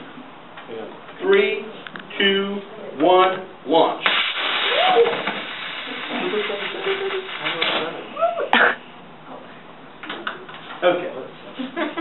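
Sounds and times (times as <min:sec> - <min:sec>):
sharp pop: 0:04.0 - 0:05.5
rocket engine hissing: 0:04.0 - 0:07.6.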